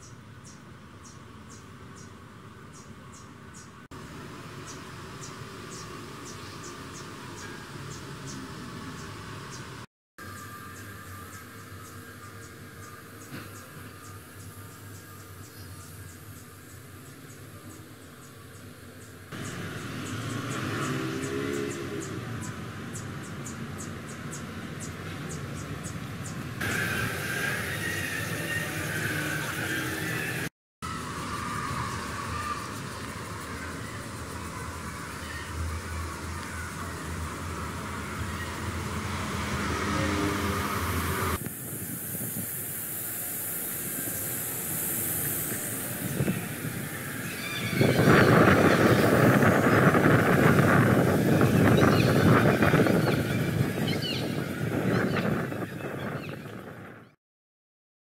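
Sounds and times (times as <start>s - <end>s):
road traffic rushing: 0.0s - 57.0s
city ambience: 0.0s - 57.2s.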